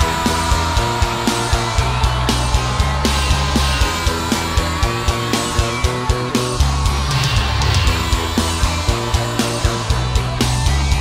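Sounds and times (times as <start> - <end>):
instrumental rock music: 0.0 - 11.0.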